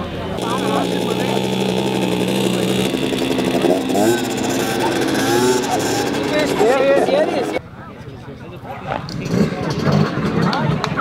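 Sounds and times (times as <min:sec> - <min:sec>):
moped engine running: 0:00.0 - 0:07.6.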